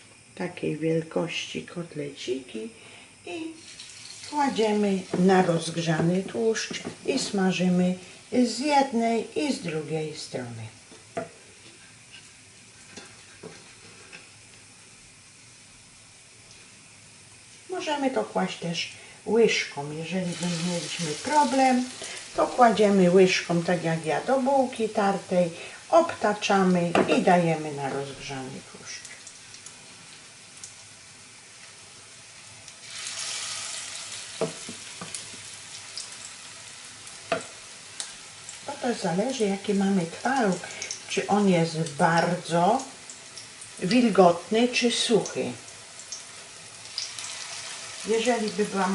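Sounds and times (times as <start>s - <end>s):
fat sizzling in a frying pan: 0.0s - 48.9s.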